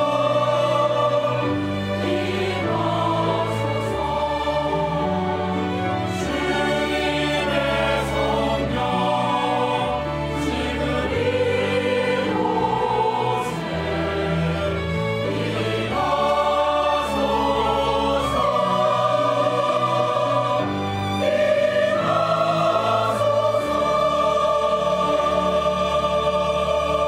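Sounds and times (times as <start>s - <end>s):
choir singing: 0.0s - 27.0s.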